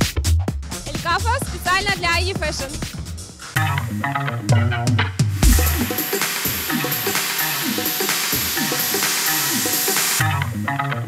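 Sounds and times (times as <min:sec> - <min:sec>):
sizzling crackling hiss: 0:05.4 - 0:10.2.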